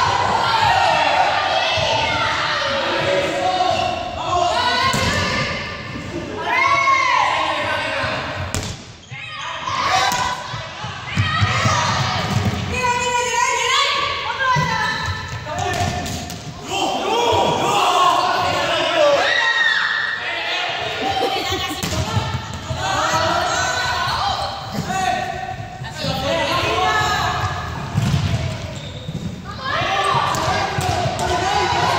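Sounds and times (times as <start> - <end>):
people shouting: 0.0 - 5.6, 16.6 - 21.3, 22.1 - 25.4, 29.5 - 31.9.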